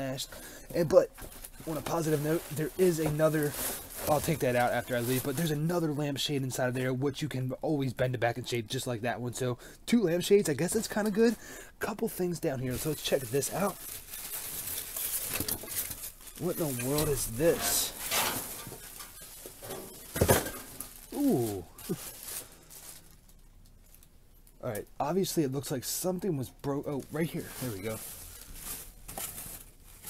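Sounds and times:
plastic packaging crinkling: 0.8 - 5.6, 12.6 - 24.8, 26.9 - 30.0.

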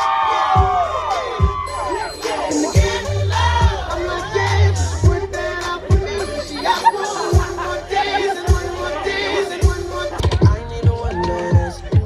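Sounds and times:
crowd shouting and cheering: 0.0 - 12.0
loud dance music with thumping beat: 0.0 - 12.0.

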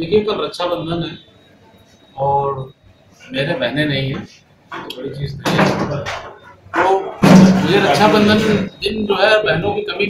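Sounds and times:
man talking: 0.0 - 1.2, 2.2 - 6.2, 6.8 - 10.0
sharp knock: 7.2 - 8.5.

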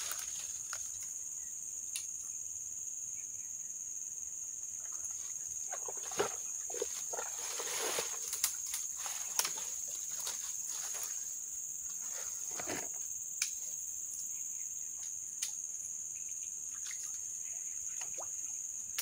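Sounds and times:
leaves and branches rustling: 0.0 - 1.2, 5.1 - 13.2
insects droning: 0.0 - 19.0
twigs snapping: 8.2 - 10.4.

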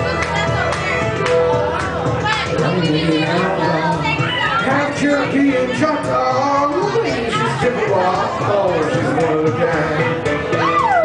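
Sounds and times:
crowd talking and shouting: 0.0 - 11.0
karaoke backing track: 0.0 - 11.0.

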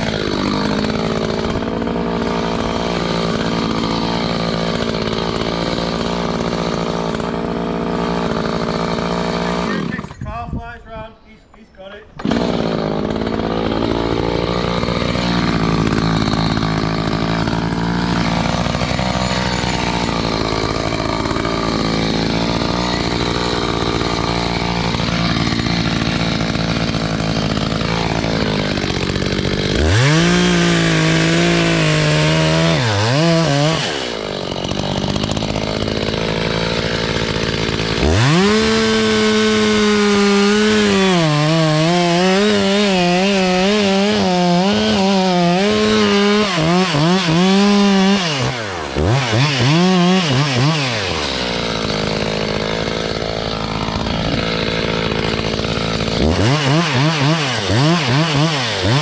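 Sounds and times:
chainsaw idling and revving: 0.0 - 59.0.

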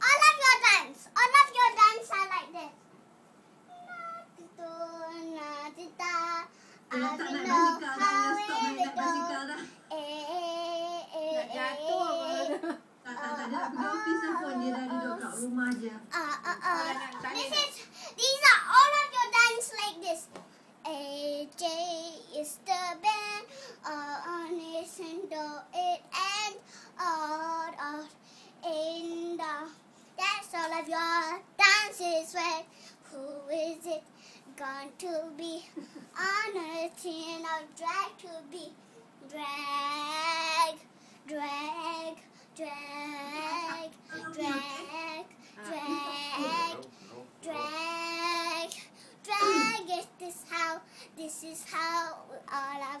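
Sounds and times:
girl singing: 3.7 - 15.2, 16.1 - 53.0.

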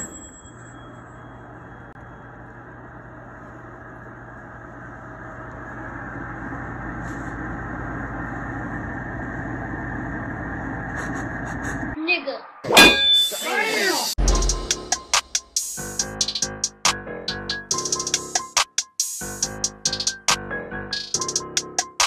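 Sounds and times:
burst of voices: 13.3 - 14.2.

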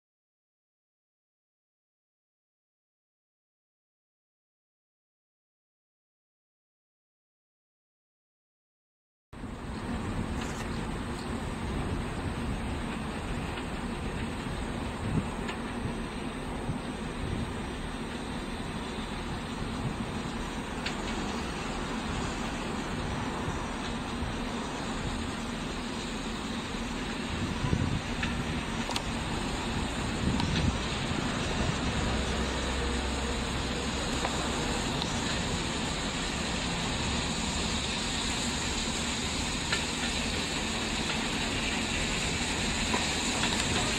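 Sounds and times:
steam train rumbling: 9.4 - 43.9.

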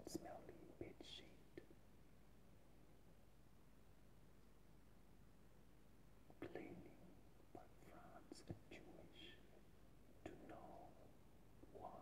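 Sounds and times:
man whispering: 0.0 - 1.8, 6.3 - 12.0.

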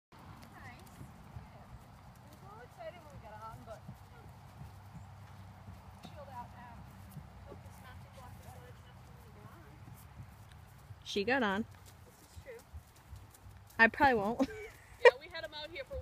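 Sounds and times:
hoofbeats on grass: 0.2 - 16.0.

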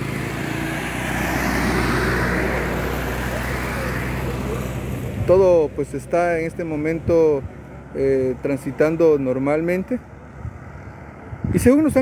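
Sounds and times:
low engine hum: 0.0 - 12.0
vehicle passing: 0.0 - 12.0.

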